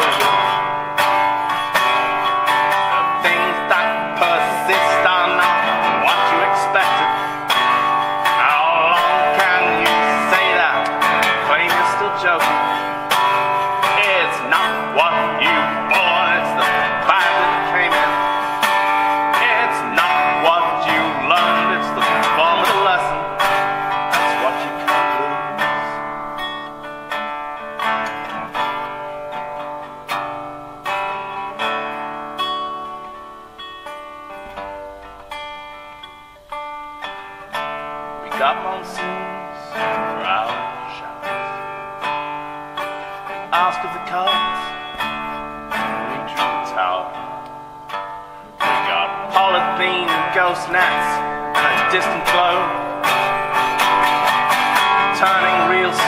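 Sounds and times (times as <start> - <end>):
man singing: 0.0 - 29.2, 38.2 - 47.8, 48.5 - 56.0
acoustic guitar strumming: 0.0 - 56.0.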